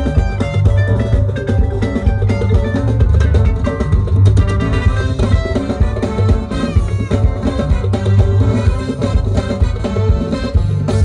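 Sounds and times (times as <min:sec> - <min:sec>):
bass guitar: 0:00.0 - 0:11.0
drums: 0:00.0 - 0:11.0.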